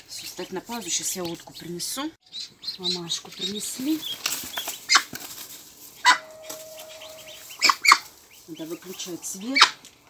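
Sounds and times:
straw and feathers rustling: 2.8 - 10.0.

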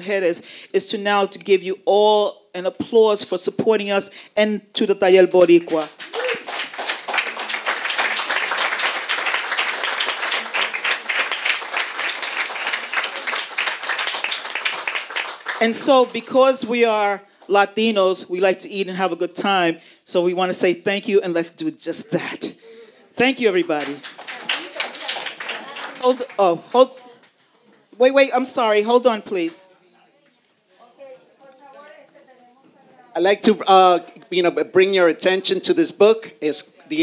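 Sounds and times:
audience applauding: 5.5 - 16.3, 23.6 - 27.4.

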